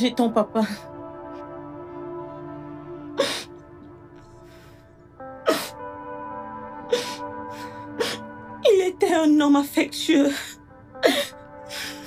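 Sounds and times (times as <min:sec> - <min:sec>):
soft background music: 0:00.0 - 0:12.0
woman crying and sobbing: 0:03.0 - 0:03.6, 0:04.6 - 0:12.0.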